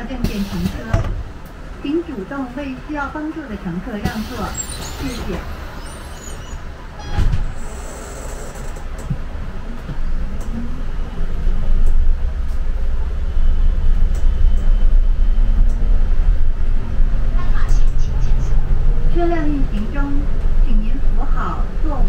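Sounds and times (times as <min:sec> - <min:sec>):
bus rumbling from inside: 0:00.0 - 0:22.0.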